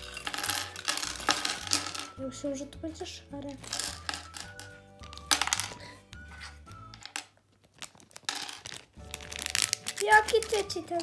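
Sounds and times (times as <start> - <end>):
plastic bricks clattering on table: 0.0 - 2.2, 3.4 - 6.0, 6.8 - 10.6
background music: 0.0 - 7.4, 8.2 - 11.0
foil bag crinkling: 7.4 - 11.0.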